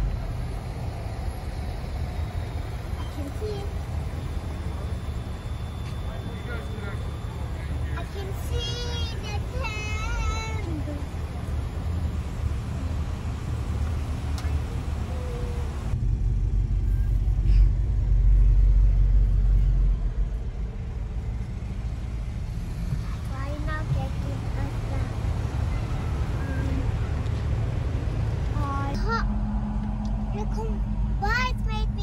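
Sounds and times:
car engines idling: 0.0s - 32.0s.

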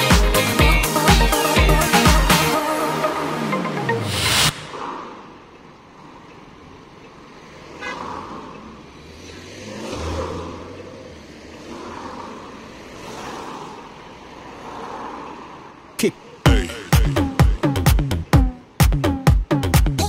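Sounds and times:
cars passing: 0.0s - 19.8s.

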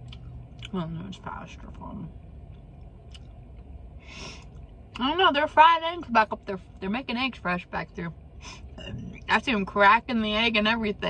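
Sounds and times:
low steady background hum: 0.0s - 11.0s
person chewing food: 3.0s - 3.4s.

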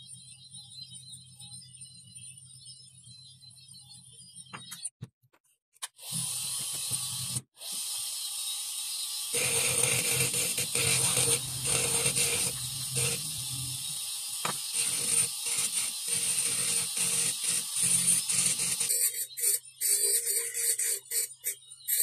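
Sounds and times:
dental spindle whining: 6.0s - 22.0s.

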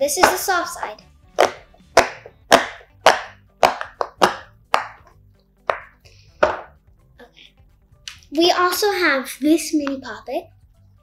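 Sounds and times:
silicone fidget toy popping: 1.4s - 6.7s.

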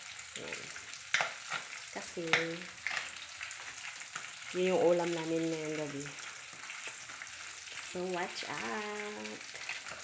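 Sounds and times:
fish sizzling in hot oil: 0.0s - 10.0s
oil spattering crackle: 0.0s - 10.0s.

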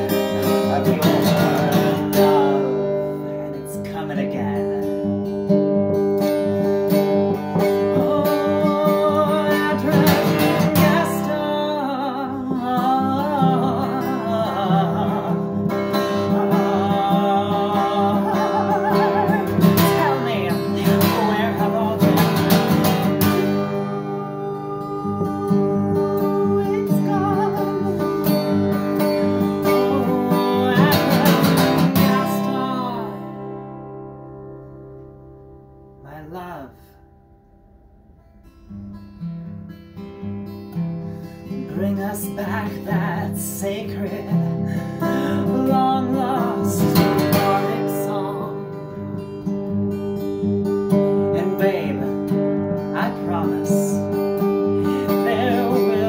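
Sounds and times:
woman singing: 0.0s - 5.1s, 7.4s - 33.7s, 41.4s - 49.2s, 51.0s - 56.0s
acoustic guitar strumming: 0.0s - 56.0s.

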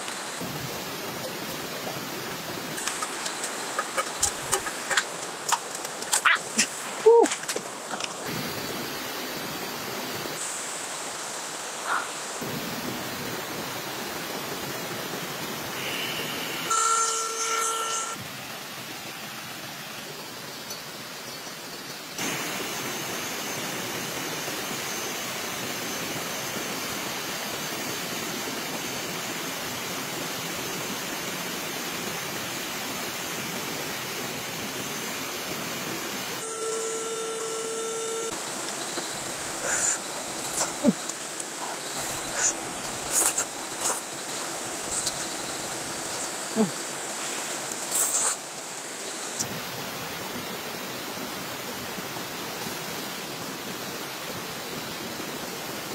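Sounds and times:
rocky stream rushing: 0.0s - 16.8s, 18.2s - 36.4s, 38.3s - 55.9s
short held tone: 15.9s - 18.2s, 36.4s - 38.4s.

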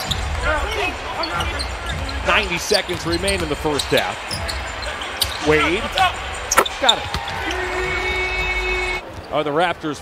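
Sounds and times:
arena noise: 0.0s - 10.0s.

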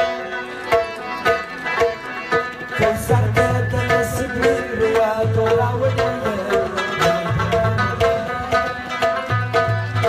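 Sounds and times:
plucked lute repeated notes: 0.0s - 10.0s
sustained harmonium chords: 0.0s - 10.0s
tabla drumming: 0.0s - 10.0s.

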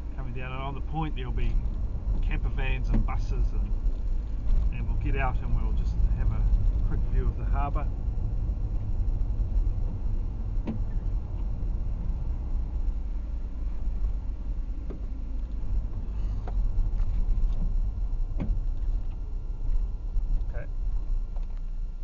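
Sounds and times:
car rumble from inside cabin: 0.0s - 22.0s.

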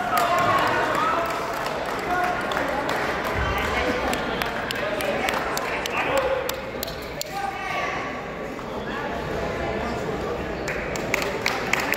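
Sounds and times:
spectators' voices: 0.0s - 11.9s.

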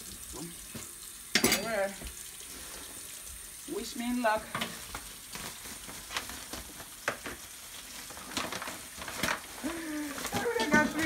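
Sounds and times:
plastic and paper bags crinkling: 4.5s - 11.0s.

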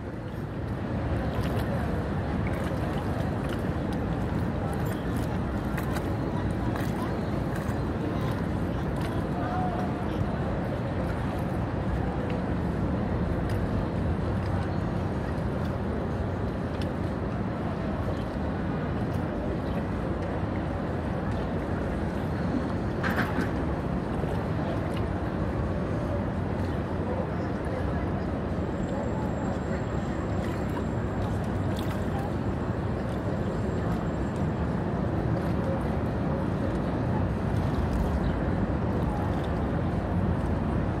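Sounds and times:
water moving around kayak: 0.0s - 41.0s.

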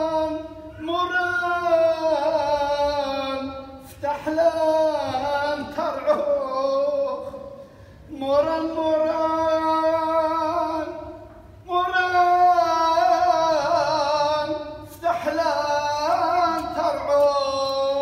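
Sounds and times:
person chanting a hymn: 0.0s - 18.0s.

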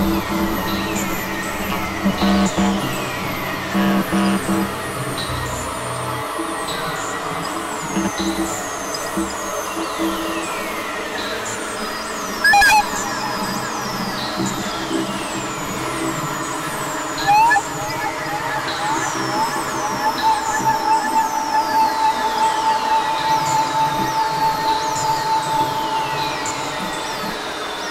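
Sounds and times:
synthesizer drone music: 0.0s - 10.2s, 12.4s - 24.6s
falling pitch sweeps: 17.2s - 21.5s.

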